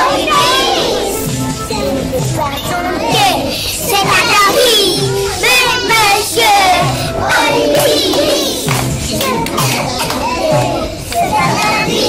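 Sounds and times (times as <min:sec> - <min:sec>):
young children talking: 0:00.0 - 0:12.0.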